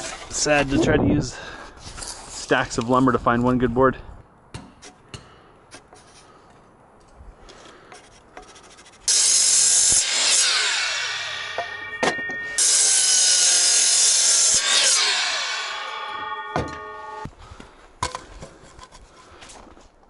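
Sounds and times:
miter saw cutting wood: 9.1s - 17.3s
saw blade winding down whine: 9.1s - 17.3s
sharp knock: 11.5s - 12.6s, 16.2s - 17.0s.

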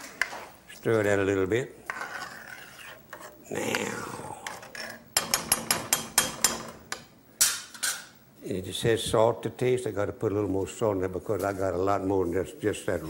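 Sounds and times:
metal spoon scraping pot: 1.8s - 3.8s, 4.4s - 6.8s.

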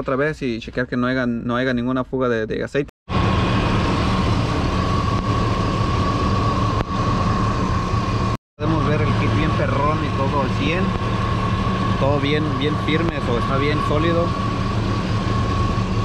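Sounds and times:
high whine: 3.1s - 16.0s.

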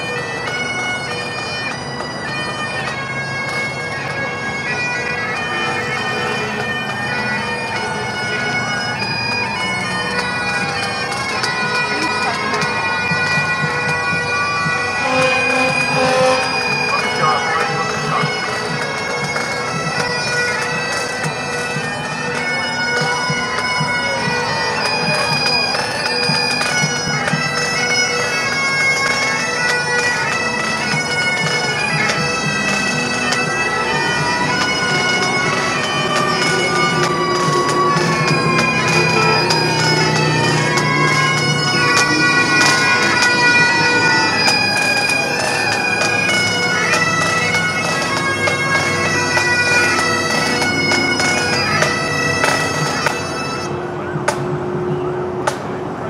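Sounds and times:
pipe band bagpipes playing: 0.0s - 55.7s.

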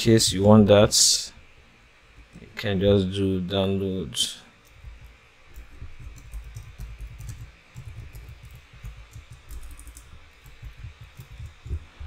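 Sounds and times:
typing on a computer keyboard: 4.6s - 11.9s.

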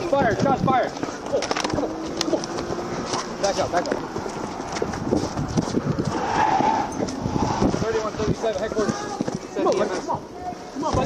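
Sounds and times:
jostling and rubbing on microphone: 0.3s - 10.1s.

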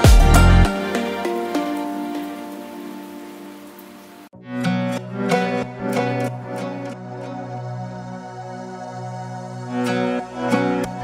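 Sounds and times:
background music: 0.0s - 11.0s
steady hiss: 0.7s - 4.3s.

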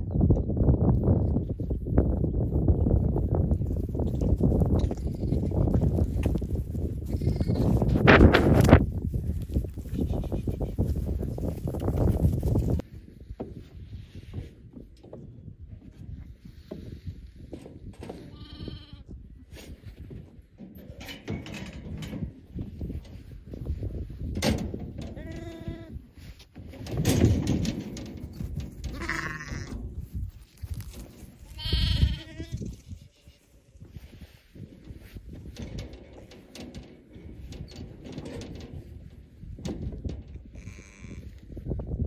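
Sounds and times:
sheep bleating: 18.3s - 19.0s, 28.9s - 29.8s, 31.6s - 33.6s, 40.6s - 41.3s.

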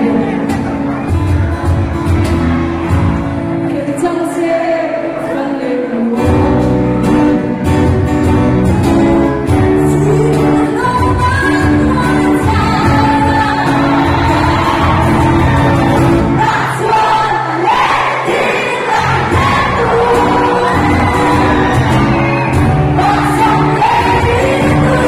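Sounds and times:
lead vocal: 0.0s - 0.8s, 3.6s - 7.0s, 9.6s - 25.0s
drums: 0.0s - 3.7s, 6.2s - 16.7s, 18.3s - 25.0s
bass: 0.0s - 4.1s, 6.2s - 16.8s, 19.0s - 25.0s
strummed acoustic guitars: 0.0s - 4.1s, 6.0s - 25.0s.

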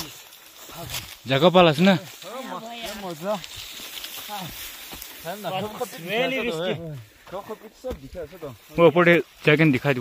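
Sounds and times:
people talking: 5.3s - 10.0s.

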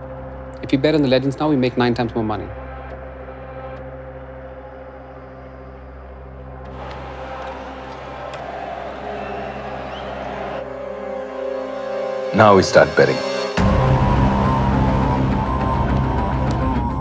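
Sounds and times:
stadium crowd noise: 3.3s - 11.0s.

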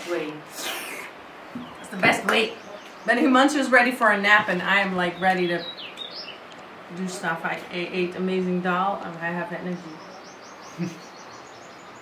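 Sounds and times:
small bird calling: 0.5s - 3.4s, 5.0s - 6.7s, 9.6s - 12.0s.

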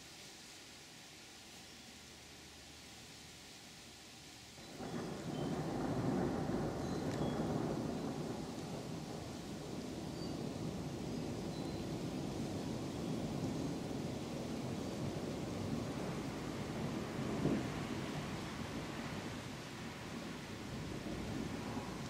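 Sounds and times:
thunder rumbling: 4.7s - 22.0s.

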